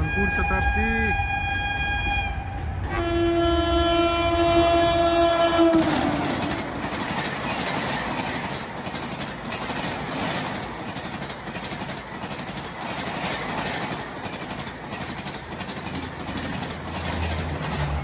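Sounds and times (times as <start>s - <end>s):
locomotive horn blast: 0.0s - 6.5s
train coaches clattering past: 0.0s - 18.0s.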